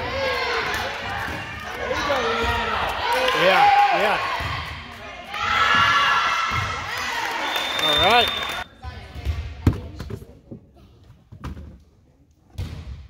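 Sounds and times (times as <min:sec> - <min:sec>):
referee's whistle blast: 0:07.3 - 0:08.7.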